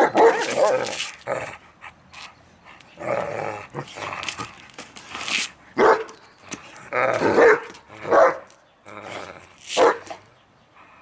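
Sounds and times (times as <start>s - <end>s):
dog play barking: 0.0s - 1.0s, 5.8s - 6.2s, 7.1s - 8.5s, 9.8s - 10.2s
dog growling: 8.8s - 9.5s.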